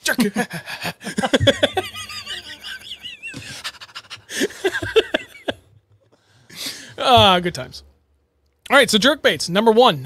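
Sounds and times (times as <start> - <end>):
men laughing hard: 0.1 - 5.7.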